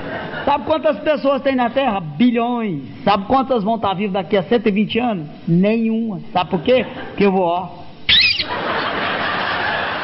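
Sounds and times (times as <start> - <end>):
audience laughing: 0.0 - 0.7, 8.4 - 10.0
high-pitched wavering shriek: 8.1 - 8.5.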